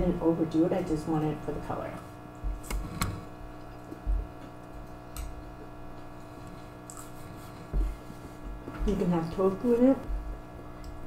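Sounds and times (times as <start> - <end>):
chewing noodles: 6.0 - 7.5
wet mouth clicks: 6.8 - 7.2.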